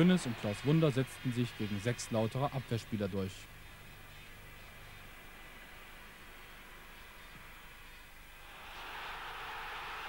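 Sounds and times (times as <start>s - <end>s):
stadium crowd cheering: 8.4s - 10.0s.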